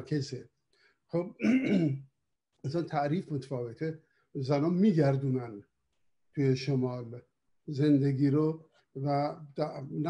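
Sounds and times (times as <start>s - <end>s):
man speaking over video call: 0.0s - 10.0s.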